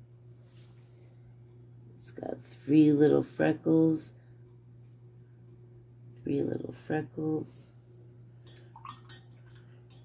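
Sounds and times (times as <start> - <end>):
brush ticking against glass: 8.4 - 10.0.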